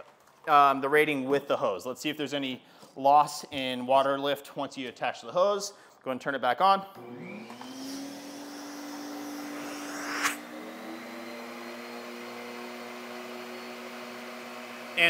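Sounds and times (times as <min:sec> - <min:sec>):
shop vac motor whine: 0:07.0 - 0:15.0
rush of air: 0:09.6 - 0:10.4.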